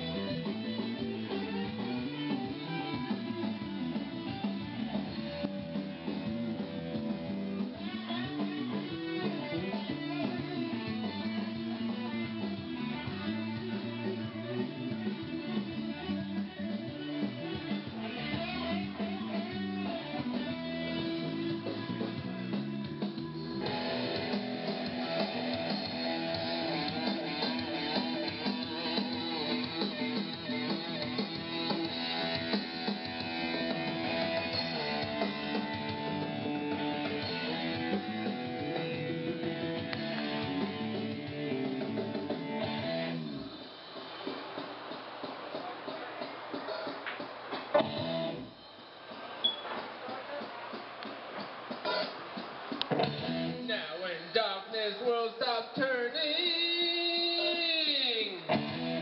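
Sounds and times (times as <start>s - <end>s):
live band music led by guitar: 0.0s - 48.5s, 49.1s - 54.0s, 55.8s - 59.0s.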